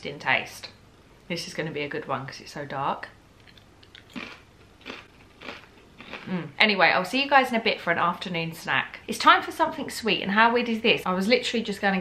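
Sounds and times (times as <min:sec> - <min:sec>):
chip crunching: 0:03.4 - 0:06.4.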